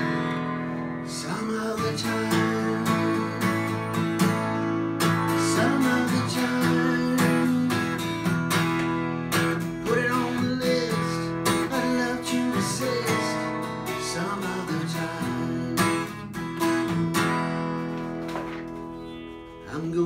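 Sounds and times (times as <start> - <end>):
acoustic guitar strummed chords: 0.0 - 20.0.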